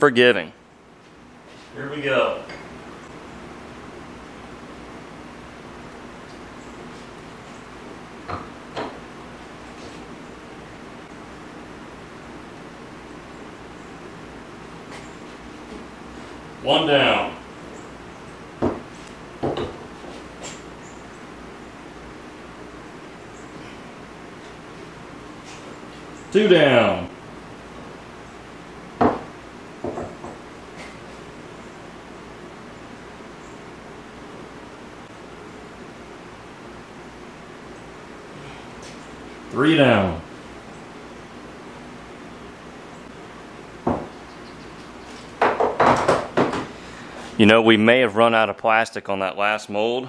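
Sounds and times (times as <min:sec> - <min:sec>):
room hum: 0:00.0 - 0:50.0.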